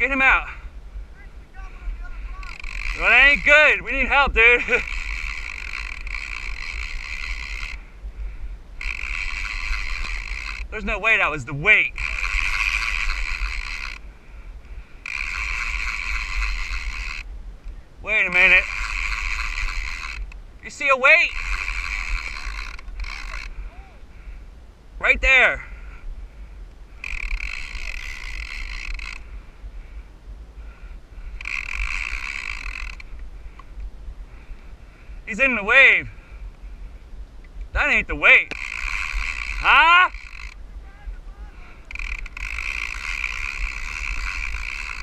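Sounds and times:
wind rumble on microphone: 0:00.0 - 0:45.0
fishing reel ratchet buzzing: 0:02.2 - 0:08.0, 0:08.8 - 0:14.1, 0:15.0 - 0:17.3, 0:18.2 - 0:23.6, 0:27.0 - 0:29.4, 0:31.2 - 0:33.7, 0:37.9 - 0:40.6, 0:41.8 - 0:45.0.

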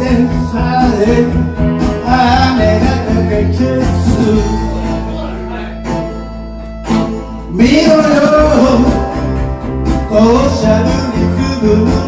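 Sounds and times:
man singing rock song: 0:00.0 - 0:05.9, 0:07.4 - 0:12.0
amplified guitar backing music: 0:00.0 - 0:12.0.

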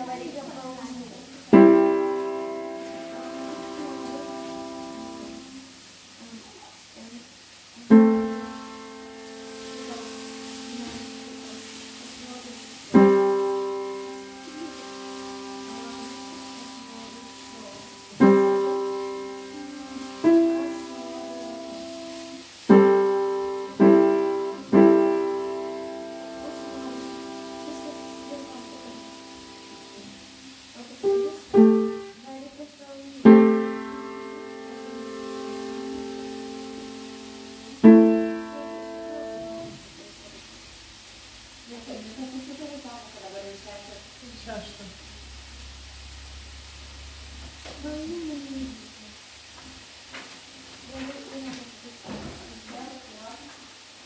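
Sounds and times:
slow piano chords: 0:00.0 - 0:06.2, 0:07.7 - 0:41.1.

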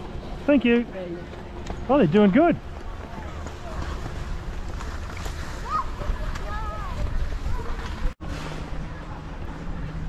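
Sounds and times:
skis sliding over snow: 0:00.0 - 0:10.0
wind rumble on microphone: 0:02.7 - 0:10.0.

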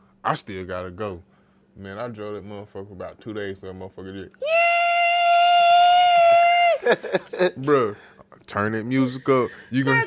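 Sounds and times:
person imitating high squeal: 0:04.4 - 0:06.8.

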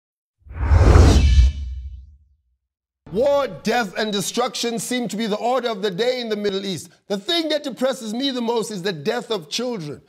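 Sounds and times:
deep rumble: 0:00.5 - 0:02.1
whoosh sound effect: 0:00.5 - 0:02.1.

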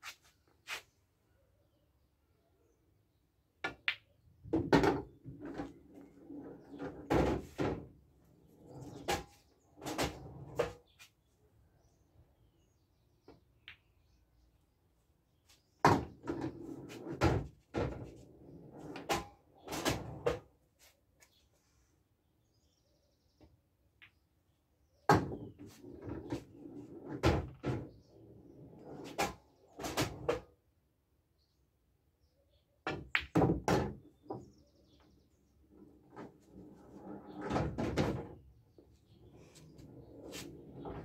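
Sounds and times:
pool balls knocking and rolling: 0:03.6 - 0:10.8, 0:15.8 - 0:20.5, 0:25.1 - 0:30.5, 0:32.8 - 0:34.5, 0:35.7 - 0:38.5, 0:39.4 - 0:41.0.

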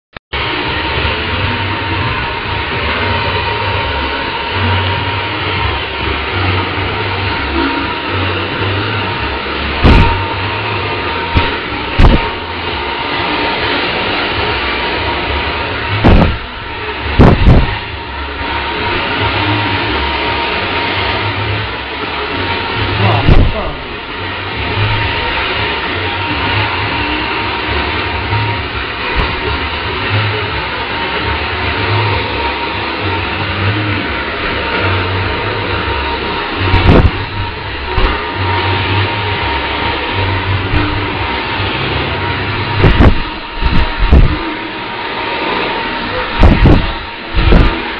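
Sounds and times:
people talking: 0:22.9 - 0:24.0.

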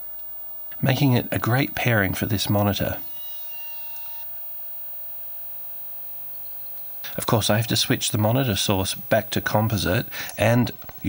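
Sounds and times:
electrical hum: 0:00.0 - 0:11.0
faint thin whine: 0:00.0 - 0:11.0.

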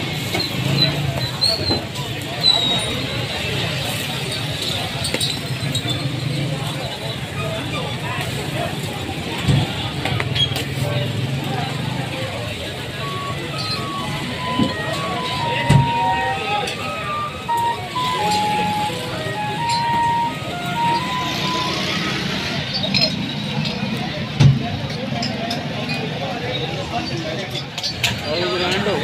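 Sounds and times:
crowd chatter: 0:00.0 - 0:29.0
street noise: 0:00.0 - 0:29.0
simple tune of single notes: 0:13.0 - 0:22.0.

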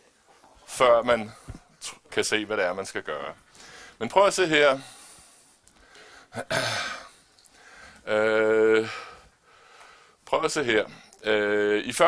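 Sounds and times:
man clearing his throat: 0:06.4 - 0:07.2.

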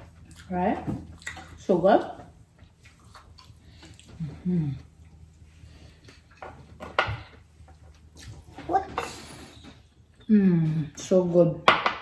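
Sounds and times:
mouth smacks and eating clicks: 0:02.6 - 0:05.2.

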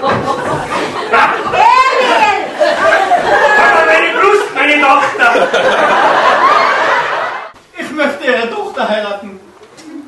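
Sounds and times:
audience laughing: 0:00.0 - 0:07.6.

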